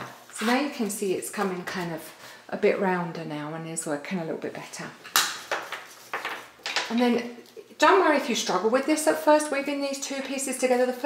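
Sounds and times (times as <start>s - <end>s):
card taps and rustles: 5.2s - 6.9s.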